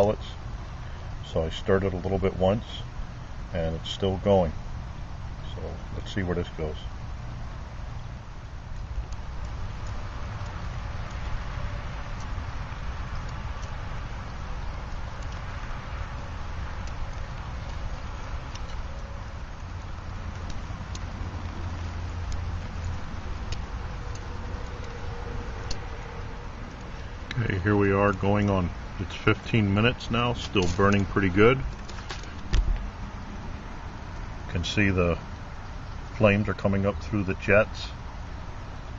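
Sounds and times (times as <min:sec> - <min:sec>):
stove low rumble: 0:00.0 - 0:38.9
sharp ticks: 0:08.7 - 0:32.8.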